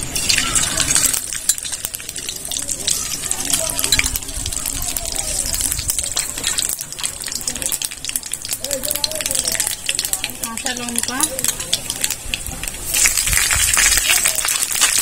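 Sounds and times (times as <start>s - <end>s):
seeds sizzling and popping in oil: 0.0s - 15.0s
spoon stirring in a pan: 5.8s - 12.2s.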